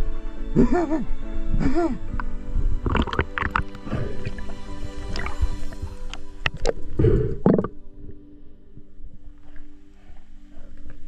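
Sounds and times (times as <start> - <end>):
background music with held notes: 0.0 - 11.0
muffled underwater rush of water: 2.6 - 8.2.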